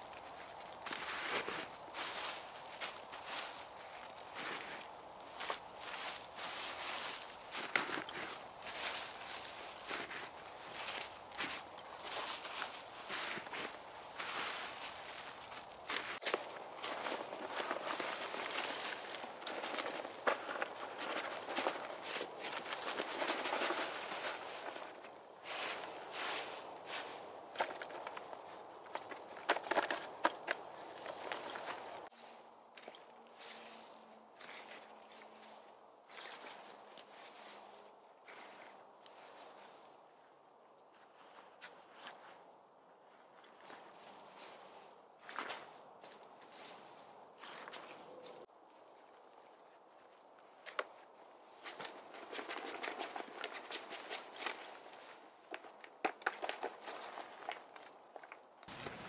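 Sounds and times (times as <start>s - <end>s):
dry leaves rustling and crunching: 0.0s - 32.2s, 51.6s - 57.9s, 58.7s - 59.0s
footsteps in leaf litter: 0.0s - 32.2s, 58.7s - 59.0s.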